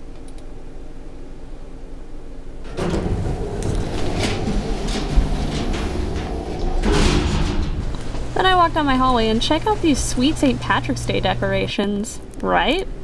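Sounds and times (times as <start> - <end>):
elevator doors sliding open: 2.6 - 12.0
rumbling clattering noise: 2.6 - 12.3.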